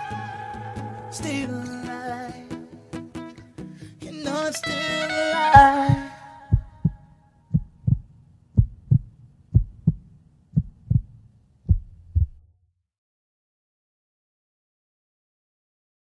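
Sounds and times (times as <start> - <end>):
heartbeat double thumps: 5.6 - 12.5.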